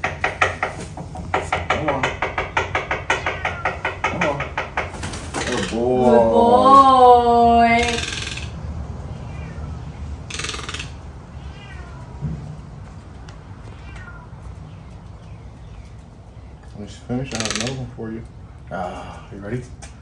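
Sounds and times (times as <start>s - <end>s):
cat meowing: 3.0s - 3.8s, 9.1s - 10.0s, 11.2s - 12.5s, 13.5s - 14.9s.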